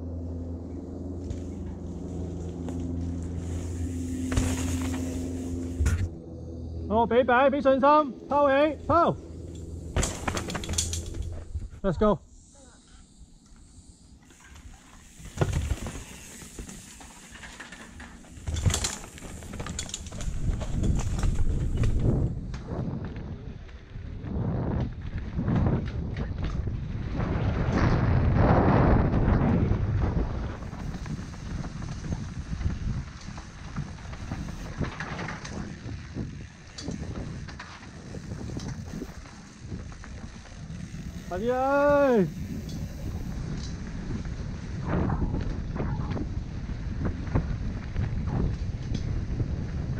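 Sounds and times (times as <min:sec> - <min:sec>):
bike rattling over dirt trail: 0:00.1 - 0:06.2, 0:06.9 - 0:12.1, 0:14.2 - 0:49.9
bike knocking on bumps: 0:02.6 - 0:06.1, 0:09.8 - 0:11.5, 0:15.0 - 0:23.2
wind on microphone: 0:20.3 - 0:49.9.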